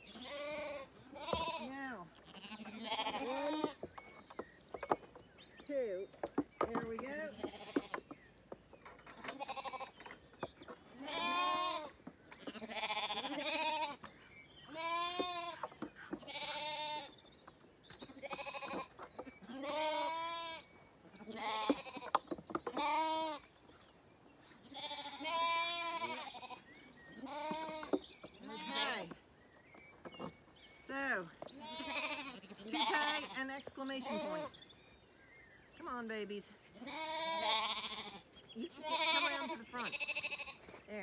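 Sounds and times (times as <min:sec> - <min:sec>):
lambs bleating: 0:00.1 - 0:03.8, 0:07.3 - 0:08.0, 0:09.3 - 0:10.0, 0:10.9 - 0:14.0, 0:14.7 - 0:17.1, 0:18.2 - 0:20.6, 0:21.2 - 0:22.1, 0:22.7 - 0:23.5, 0:24.7 - 0:26.6, 0:27.2 - 0:29.1, 0:31.6 - 0:34.6, 0:36.8 - 0:40.6.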